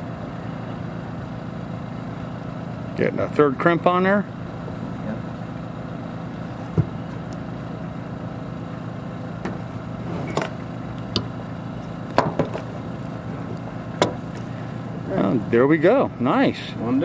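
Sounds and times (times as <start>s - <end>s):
engine hum: 0.0s - 17.0s.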